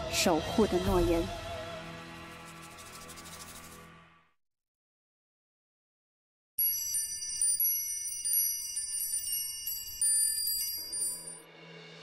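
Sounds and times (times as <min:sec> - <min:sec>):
high ringing chime tones: 0:06.6 - 0:11.4.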